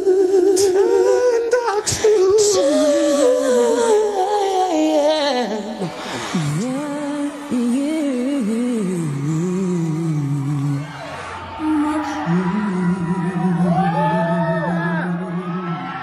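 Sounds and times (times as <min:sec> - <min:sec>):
woman singing ballad: 0:00.0 - 0:16.0.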